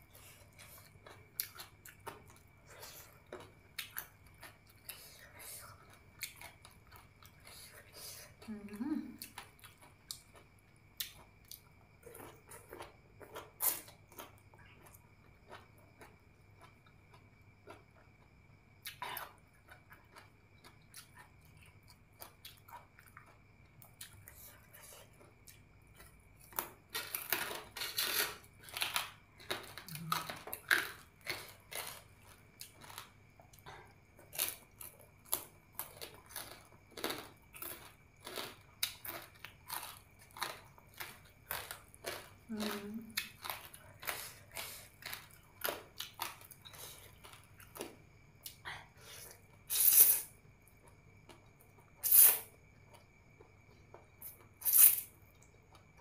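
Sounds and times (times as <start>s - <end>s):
wet chewing with crunches: 9.2s - 24.3s, 25.0s - 48.6s.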